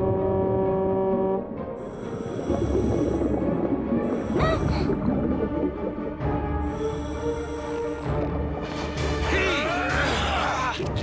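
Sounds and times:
air horn underwater: 0.0s - 9.2s.

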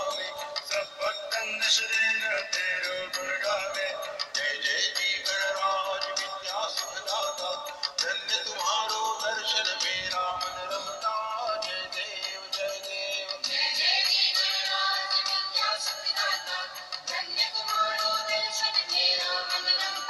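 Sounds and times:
devotional song: 0.0s - 20.0s.

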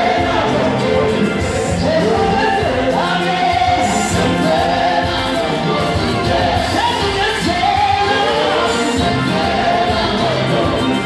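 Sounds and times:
choir singing gospel: 0.0s - 11.0s
drum kit: 0.0s - 11.0s.

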